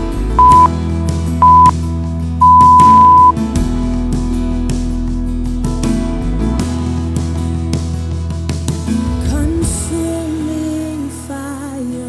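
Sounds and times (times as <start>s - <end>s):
short electronic beeps: 0.4s - 0.7s, 1.4s - 1.7s, 2.4s - 3.3s.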